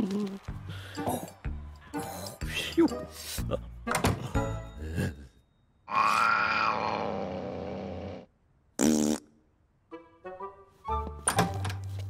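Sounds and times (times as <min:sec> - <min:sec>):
cartoon cat yowling: 0:05.9 - 0:07.6.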